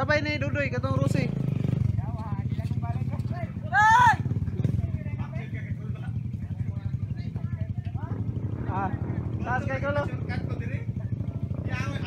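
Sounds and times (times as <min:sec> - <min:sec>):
motorcycle engine idling: 0:00.0 - 0:12.0
person shouting: 0:03.6 - 0:04.3.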